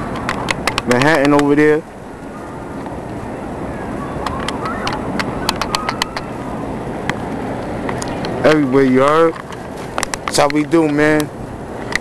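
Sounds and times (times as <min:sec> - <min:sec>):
distant traffic: 0:00.0 - 0:12.0
wind: 0:00.0 - 0:12.0
sharp clicks: 0:00.1 - 0:01.6, 0:04.2 - 0:06.3, 0:09.3 - 0:11.3.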